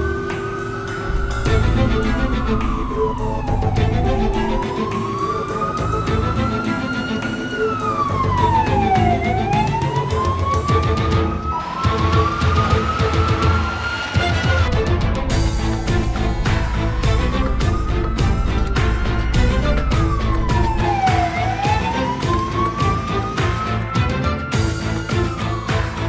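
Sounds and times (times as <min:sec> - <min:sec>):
dramatic background music: 0:00.0 - 0:26.0
police siren wailing: 0:00.0 - 0:26.0.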